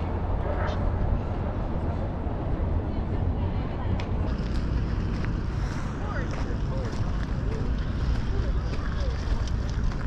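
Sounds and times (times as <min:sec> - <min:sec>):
faint voices: 0:00.0 - 0:10.0
wind buffeting microphone: 0:00.0 - 0:10.0.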